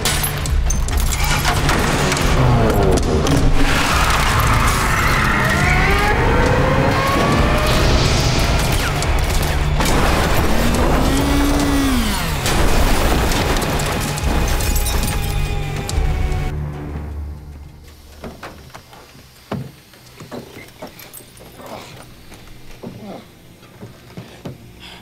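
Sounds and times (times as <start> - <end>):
car crashing and glass shattering: 0.0 - 5.6, 7.1 - 15.4
dramatic film score: 0.0 - 19.2.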